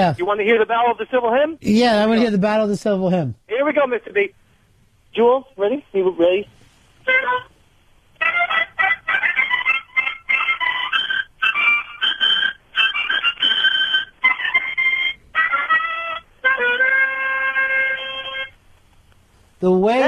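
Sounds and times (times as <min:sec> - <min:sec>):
harmonica chords: 0:08.2 - 0:18.6.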